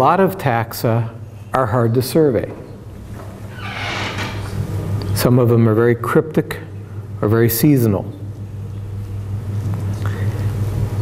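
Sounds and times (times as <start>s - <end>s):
steady low room hum: 0.0s - 11.0s.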